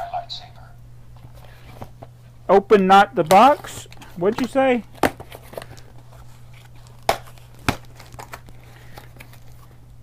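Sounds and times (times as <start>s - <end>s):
cardboard flaps crinkling: 3.2s - 9.8s
cardboard snaps: 4.3s - 5.9s, 6.8s - 9.4s.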